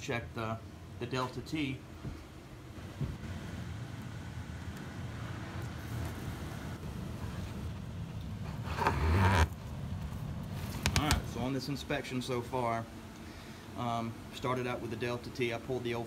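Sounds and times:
furnace blower humming: 0.0 - 16.0.

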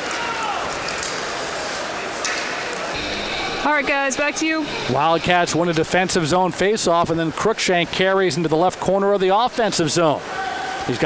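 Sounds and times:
hockey play on ice: 0.0 - 2.9
crowd noise: 0.0 - 11.0
man speaking: 4.8 - 10.2.

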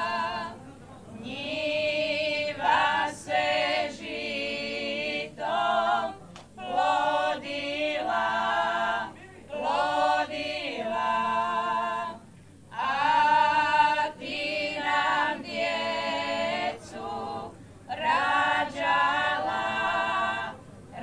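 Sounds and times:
women's group singing a cappella: 0.0 - 21.0.

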